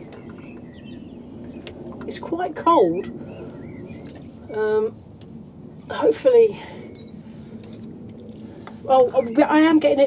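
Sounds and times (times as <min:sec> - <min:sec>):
woman speaking: 0:04.5 - 0:05.0, 0:05.9 - 0:06.8, 0:08.8 - 0:10.0.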